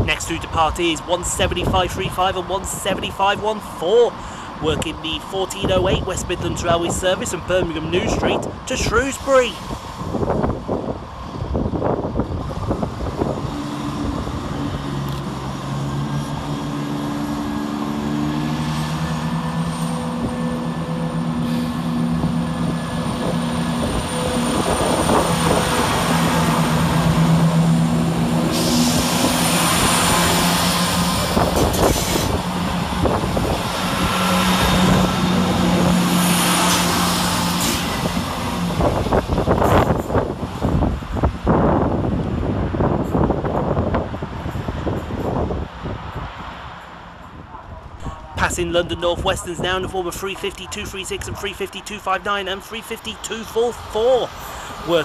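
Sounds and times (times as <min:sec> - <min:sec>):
diesel train engines working hard: 0:00.0 - 0:55.0
wheel and rail noise: 0:08.6 - 0:49.0.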